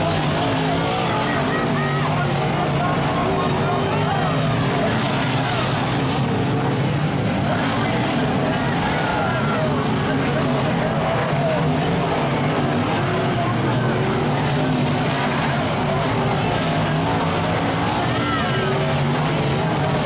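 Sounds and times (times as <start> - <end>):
race car engines revving: 0.0 - 20.0.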